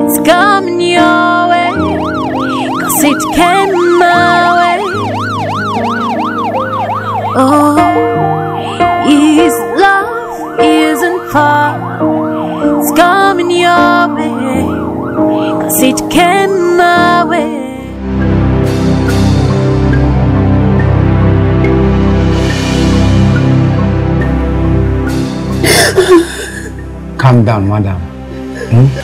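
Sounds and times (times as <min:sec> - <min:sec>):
background music with sustained chords: 0:00.0 - 0:29.0
police siren wailing: 0:00.4 - 0:26.8.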